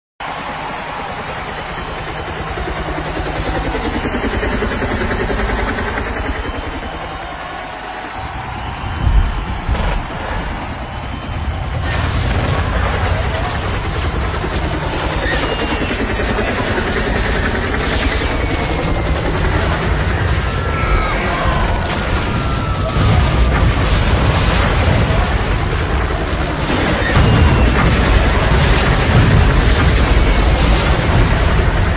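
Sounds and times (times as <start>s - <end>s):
crowd noise: 0.2s - 4.0s, 4.6s - 31.9s
loud bangs: 7.2s - 20.5s, 21.1s - 31.9s.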